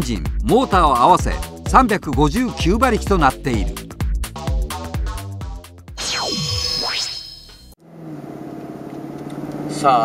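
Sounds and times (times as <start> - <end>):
rising electronic sweep: 6.0 - 7.8.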